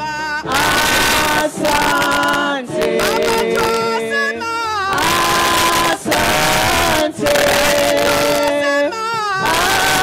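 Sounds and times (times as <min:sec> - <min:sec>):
mixed choir singing: 0:00.0 - 0:10.0.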